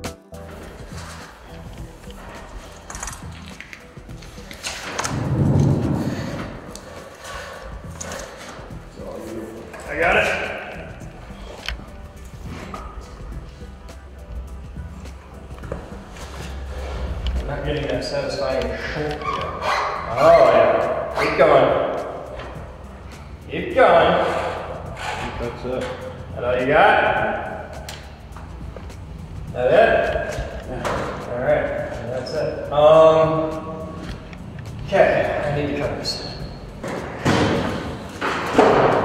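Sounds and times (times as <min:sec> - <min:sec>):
loud bumps: 0:05.0 - 0:06.9.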